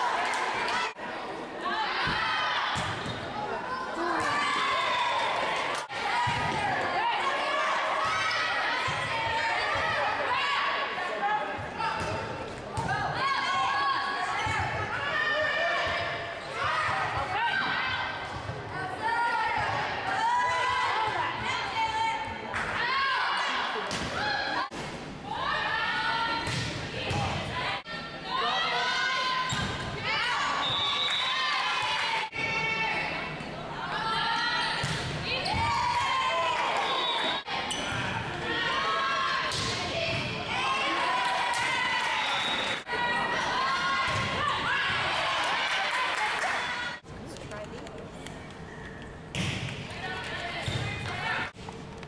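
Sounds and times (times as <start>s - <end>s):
voices in a gym: 0.0s - 51.6s.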